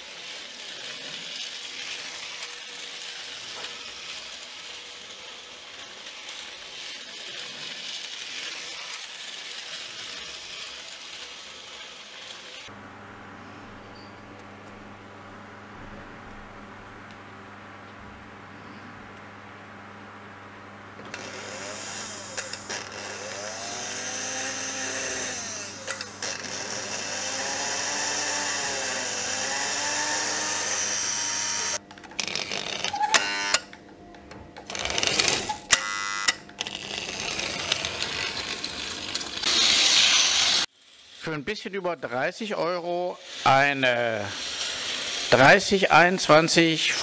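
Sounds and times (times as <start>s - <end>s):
model locomotive motor whirring: 0.0s - 12.7s, 21.1s - 33.6s, 34.7s - 41.6s, 43.2s - 47.0s.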